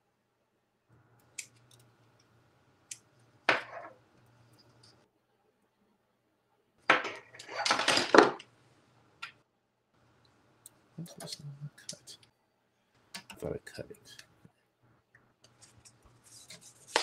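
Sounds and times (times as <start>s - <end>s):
clattering plastic: 7.0s - 8.5s.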